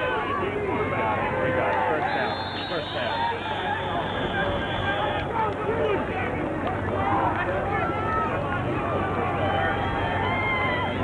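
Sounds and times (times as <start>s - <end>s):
babble of spectators: 0.0s - 11.0s.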